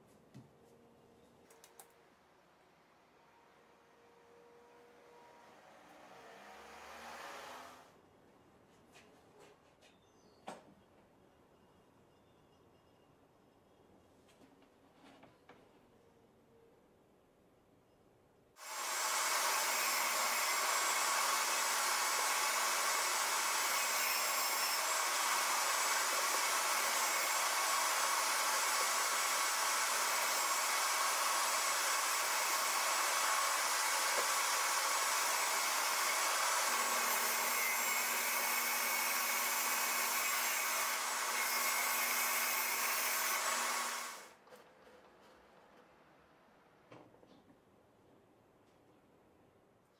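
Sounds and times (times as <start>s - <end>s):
table saw whirring: 3.1s - 8.0s, 18.6s - 44.4s.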